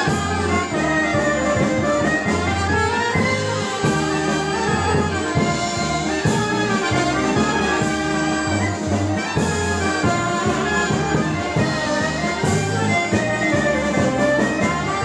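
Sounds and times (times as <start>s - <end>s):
folk dance music with brass: 0.0s - 15.0s.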